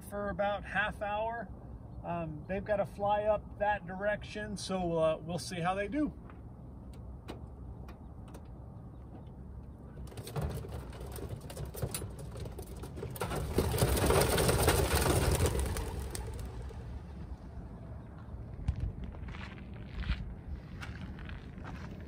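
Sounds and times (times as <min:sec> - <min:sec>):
pigeon wings flapping: 0:10.0 - 0:17.2.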